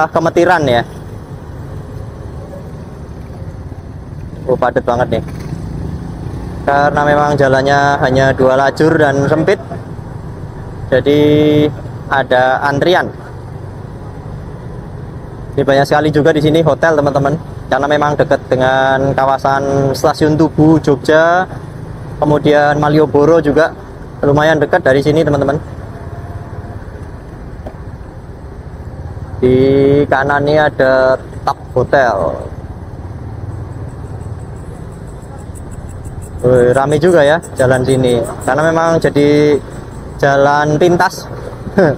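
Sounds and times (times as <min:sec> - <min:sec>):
motorbike moving in traffic: 0:00.0 - 0:41.9
road noise: 0:00.0 - 0:41.9
scooter engine low rumble: 0:00.2 - 0:41.9.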